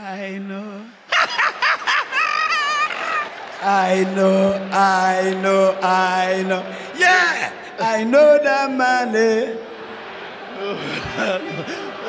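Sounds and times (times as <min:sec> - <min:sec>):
man laughing into microphone: 0:01.1 - 0:03.4, 0:10.6 - 0:12.0.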